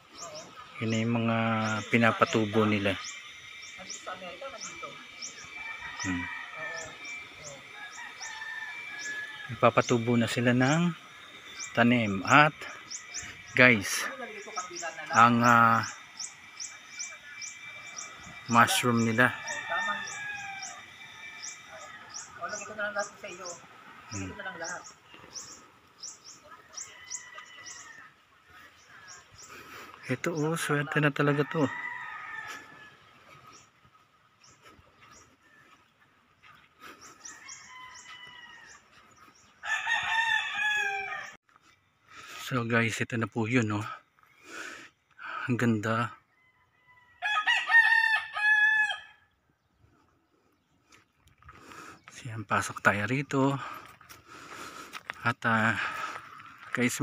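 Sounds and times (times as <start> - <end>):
small bird chirping: 0.0 - 28.0
distant rooster crowing: 0.4 - 25.6, 26.4 - 29.5, 30.1 - 33.7, 37.0 - 41.4, 46.1 - 49.4
rooster crowing: 0.9 - 25.6, 26.4 - 29.4, 30.3 - 33.6, 37.0 - 41.4, 46.2 - 49.3.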